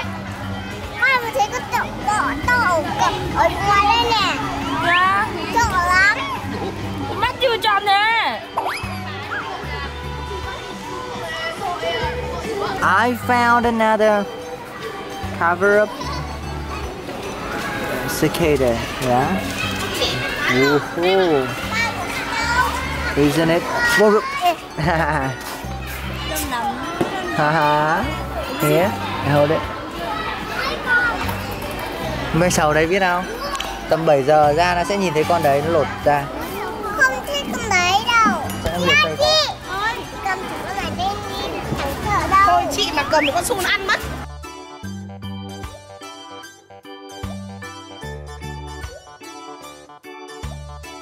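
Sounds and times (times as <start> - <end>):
background music: 0.0 - 51.0
young children's voices: 0.7 - 7.1, 19.5 - 27.4, 28.3 - 32.1, 36.3 - 44.2.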